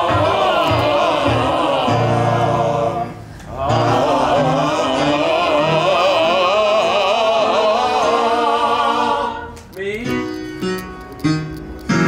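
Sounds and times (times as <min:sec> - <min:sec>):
voices singing a held note: 0:00.0 - 0:09.6.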